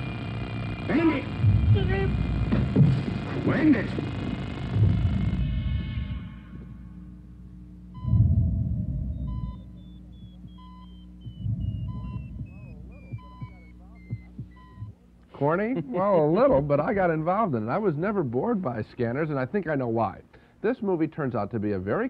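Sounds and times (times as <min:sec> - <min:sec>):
low pulsing electronic rumbles: 0:00.0 - 0:18.3
short electronic beep: 0:08.0 - 0:14.9
descending high beeps: 0:08.0 - 0:15.0.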